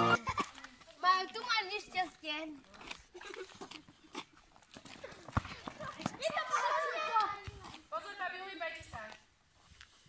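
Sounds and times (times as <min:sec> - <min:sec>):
children calling out: 0:05.8 - 0:07.6.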